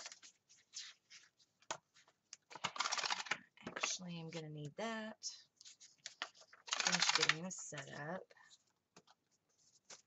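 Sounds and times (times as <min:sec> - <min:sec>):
paper rustling and crackling: 0:00.0 - 0:04.0, 0:05.6 - 0:10.0.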